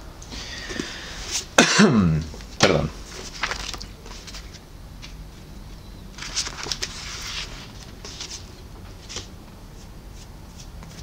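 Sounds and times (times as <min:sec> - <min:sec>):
book pages rustling: 0:02.3 - 0:05.2, 0:06.2 - 0:11.0.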